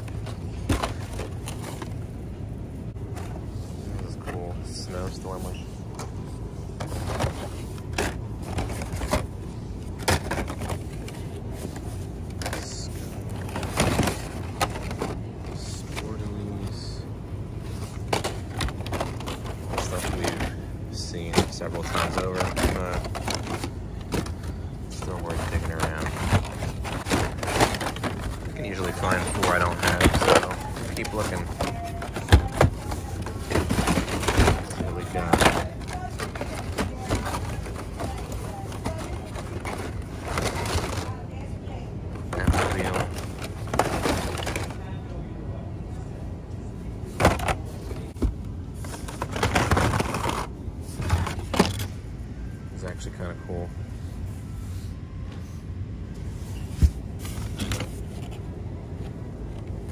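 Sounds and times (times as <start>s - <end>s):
steady low hum: 0.0s - 59.9s
plastic packaging clacking: 6.8s - 17.0s, 17.7s - 41.2s, 42.2s - 44.9s, 47.1s - 51.9s.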